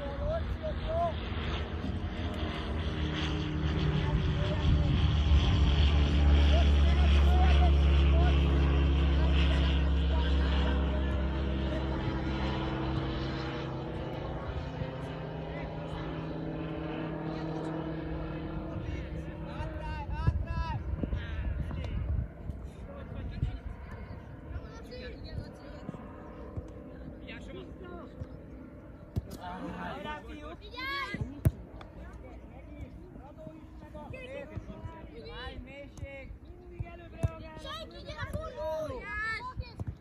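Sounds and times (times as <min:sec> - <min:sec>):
passing engine drone: 0:00.0 - 0:20.9.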